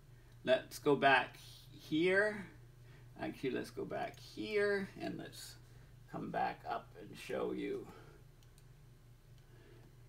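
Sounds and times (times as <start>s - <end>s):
low steady hum: 0.0s - 10.0s
computer mouse clicks: 8.4s - 8.7s.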